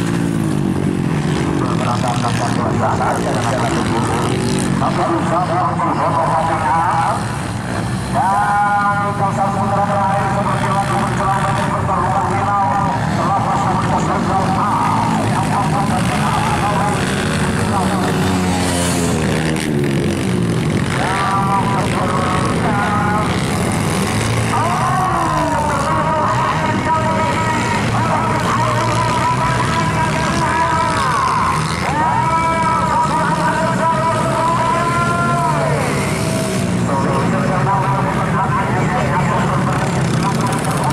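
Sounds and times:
dirt bike engines revving: 0.0s - 40.9s.

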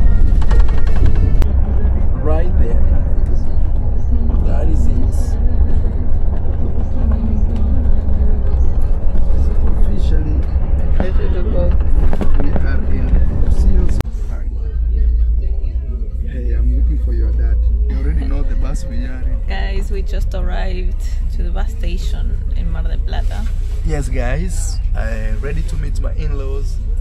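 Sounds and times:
bus engine and road rumble: 0.0s - 27.0s.

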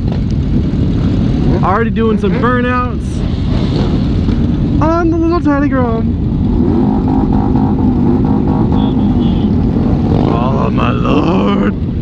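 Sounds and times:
motorcycle engines idling: 0.0s - 12.0s.

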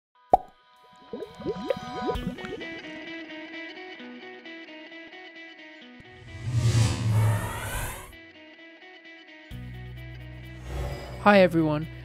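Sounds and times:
rising bubble plops: 0.3s - 2.9s
held musical tone: 1.0s - 3.3s.

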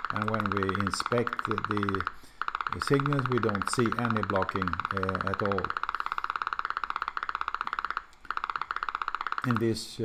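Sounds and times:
fast train of sharp pops: 0.0s - 9.9s.

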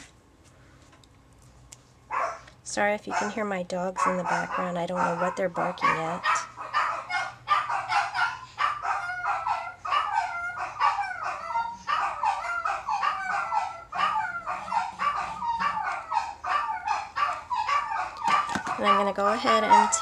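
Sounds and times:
dogs barking: 2.1s - 2.5s, 3.1s - 20.0s.

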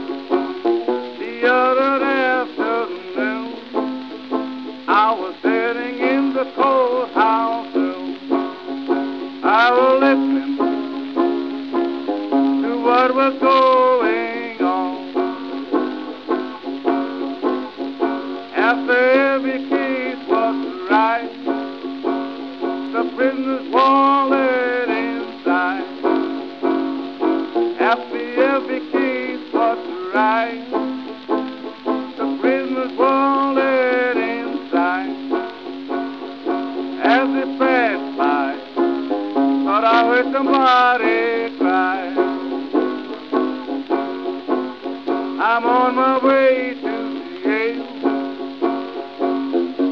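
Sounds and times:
banjo picking: 0.0s - 49.9s
man singing: 1.1s - 3.9s, 4.8s - 11.3s, 12.3s - 15.3s, 18.5s - 21.6s, 22.8s - 26.2s, 27.7s - 30.9s, 32.1s - 35.5s, 36.8s - 42.6s, 45.3s - 48.2s.

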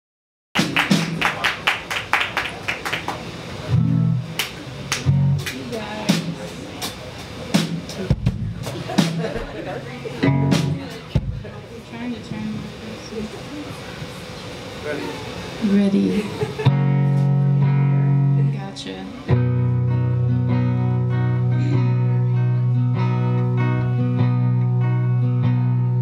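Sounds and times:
crowd chatter: 0.6s - 25.9s
low guitar notes: 3.7s - 6.4s, 10.2s - 11.5s, 16.6s - 26.0s.

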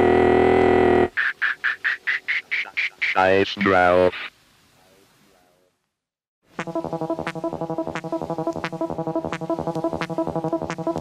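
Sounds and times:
techno synth stutter and warble: 6.6s - 11.0s.

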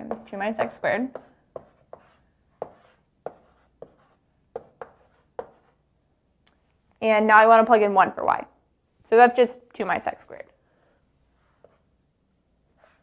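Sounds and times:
chalk tapping and scratching: 0.0s - 5.8s, 11.5s - 11.9s, 12.8s - 13.0s.

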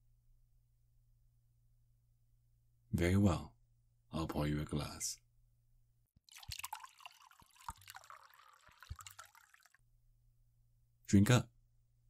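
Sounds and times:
wine pouring into glass: 6.3s - 9.8s.

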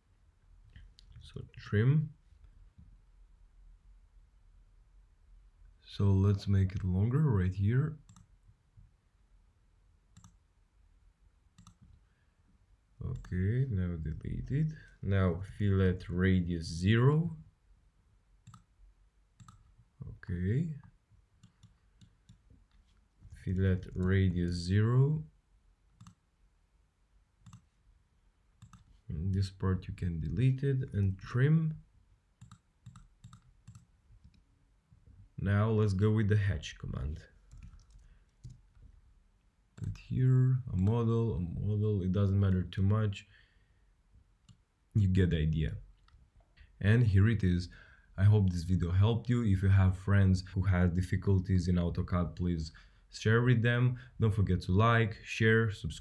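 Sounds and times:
computer mouse clicks: 8.1s - 8.3s, 10.2s - 10.4s, 11.6s - 12.0s, 13.1s - 13.4s, 18.4s - 18.7s, 19.4s - 19.7s, 21.4s - 22.8s, 26.0s - 26.2s, 27.4s - 27.7s, 28.6s - 29.0s, 32.4s - 34.4s, 37.5s - 38.6s
faint computer mouse clicks: 10.2s - 10.4s, 11.6s - 12.0s, 18.4s - 18.7s, 19.4s - 19.7s, 27.4s - 27.7s, 32.4s - 34.4s.

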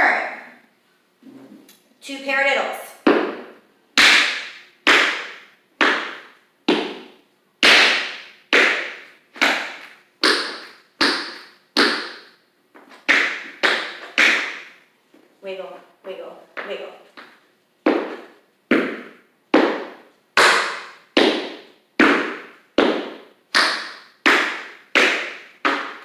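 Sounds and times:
tap shoes striking wooden floor: 3.0s - 14.7s, 16.6s - 26.0s.

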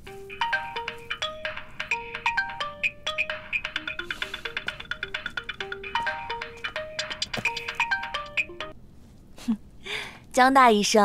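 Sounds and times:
bouncy background music: 0.0s - 8.8s.

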